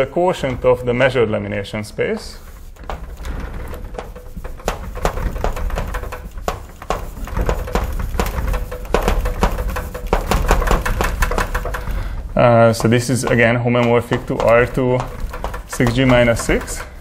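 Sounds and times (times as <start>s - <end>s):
chalk tapping and scratching: 0.0s - 17.0s.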